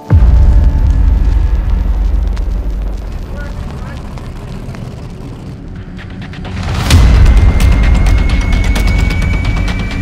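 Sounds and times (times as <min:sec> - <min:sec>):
powerboat engines idling: 0:02.6 - 0:06.9.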